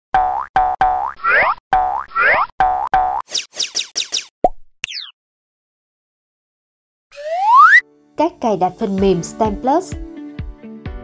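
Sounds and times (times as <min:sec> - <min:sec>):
falling chirps: 0:03.3 - 0:04.3, 0:07.1 - 0:07.8
high falling zip: 0:07.1 - 0:07.8
upward swooping pitched notes: 0:07.1 - 0:07.8.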